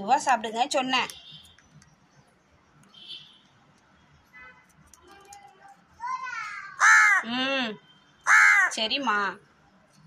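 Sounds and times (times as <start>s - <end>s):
crow cawing: 6.7s - 7.4s, 8.2s - 8.8s.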